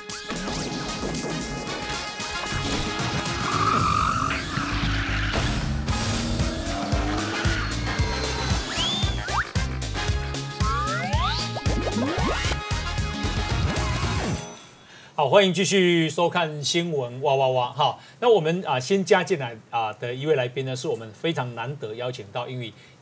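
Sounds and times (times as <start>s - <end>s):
upbeat music with bass beat: 6.2s - 14.2s
cartoon swooping effects: 6.4s - 9.6s, 10.6s - 12.6s
sliding whistles: 7.1s - 9.6s.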